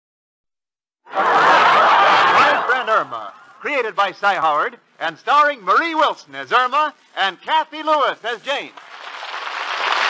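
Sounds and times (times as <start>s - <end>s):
studio audience laughing: 1.1s - 3.6s
announcer speaking: 2.4s - 8.7s.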